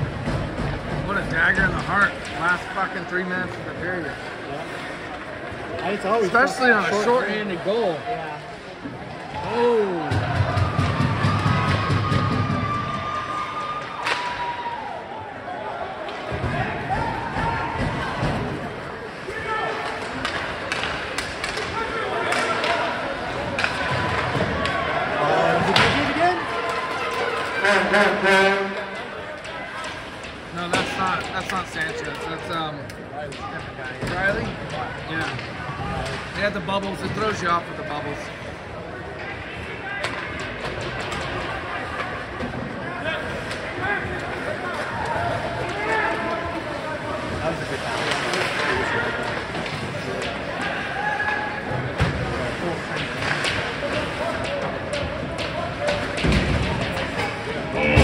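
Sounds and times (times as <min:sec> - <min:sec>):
indistinct voices: 0:16.0 - 0:58.0
hockey sticks and puck knocking: 0:19.7 - 0:24.8, 0:47.3 - 0:58.0.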